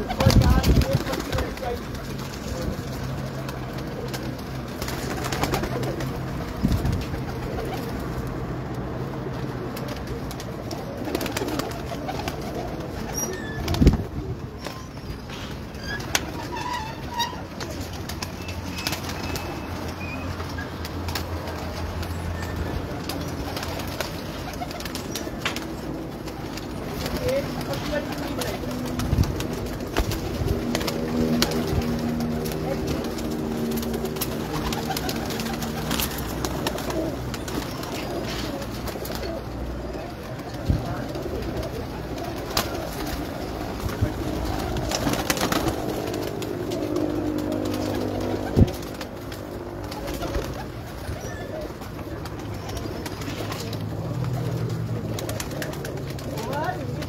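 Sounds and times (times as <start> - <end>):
pigeons cooing: 9.2 - 57.0.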